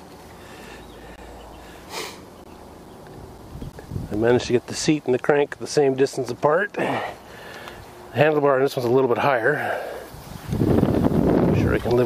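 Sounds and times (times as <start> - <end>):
short breathy hiss: 1.8 - 2.3.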